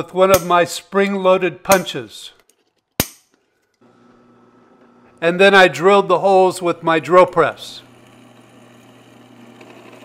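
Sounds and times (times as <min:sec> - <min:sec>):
center punch sharp click: 0:03.0 - 0:03.3
drill press motor hum: 0:03.8 - 0:05.2, 0:07.4 - 0:10.0.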